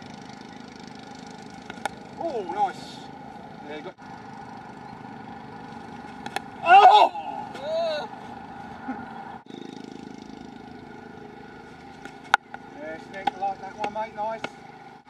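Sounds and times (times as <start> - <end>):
cricket bat striking ball: 1.6 - 2.0, 6.0 - 6.6, 12.0 - 14.6
person shouting: 6.6 - 8.1.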